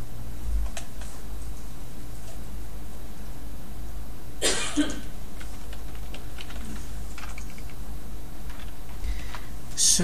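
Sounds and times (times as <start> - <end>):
low electrical hum: 0.0 - 10.0
loud cough: 4.4 - 5.1
computer keyboard keystrokes: 5.4 - 7.8, 8.5 - 9.4.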